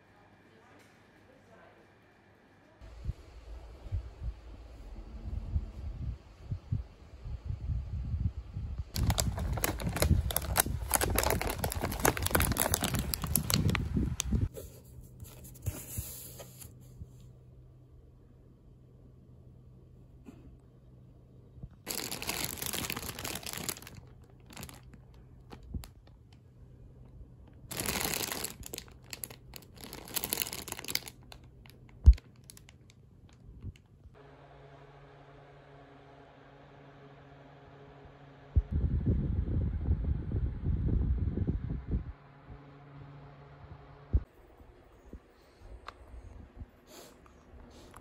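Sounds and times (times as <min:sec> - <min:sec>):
plastic wrapping crinkling: 0:08.9 - 0:14.5, 0:21.9 - 0:26.2, 0:27.7 - 0:33.9.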